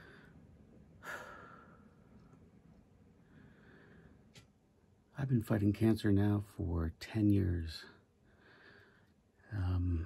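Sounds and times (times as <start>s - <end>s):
soft breathy sigh: 1.0s - 2.0s.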